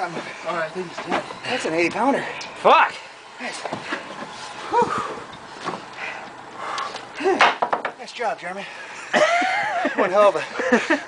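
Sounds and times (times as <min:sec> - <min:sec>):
men grunting: 0:04.6 - 0:05.3, 0:07.1 - 0:07.6
sharp knocks: 0:07.4 - 0:08.0.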